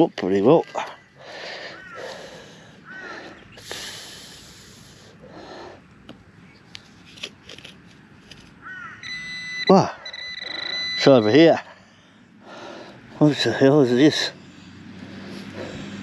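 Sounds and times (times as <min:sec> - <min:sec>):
metal detector high beeping: 0:09.0 - 0:11.8.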